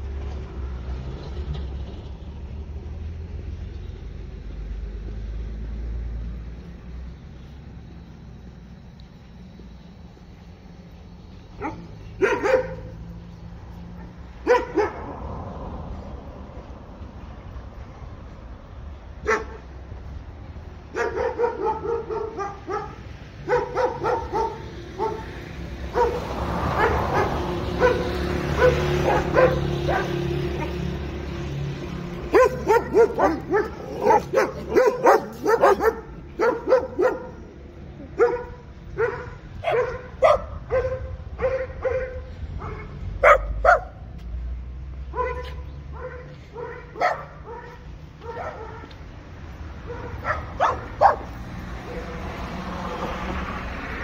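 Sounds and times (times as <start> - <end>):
dog barking: 11.6 - 13.0, 14.0 - 15.3, 19.2 - 19.6, 20.9 - 30.8, 32.3 - 37.4, 38.1 - 44.0, 45.1 - 49.0, 49.8 - 52.2.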